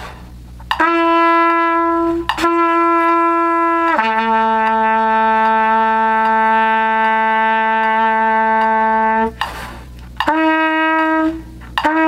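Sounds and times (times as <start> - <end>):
trumpet held notes: 0.0 - 12.0
player taking a quick breath: 9.4 - 10.0.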